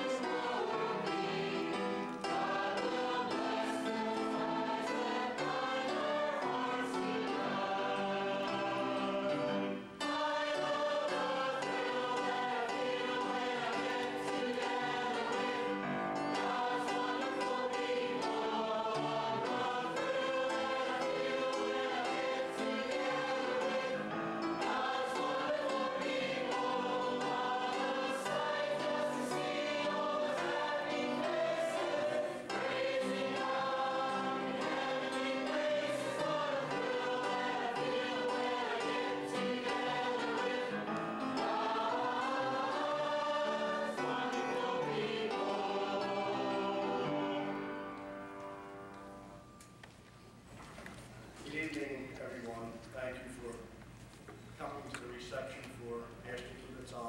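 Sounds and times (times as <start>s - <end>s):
group of voices singing: 0.0s - 48.0s.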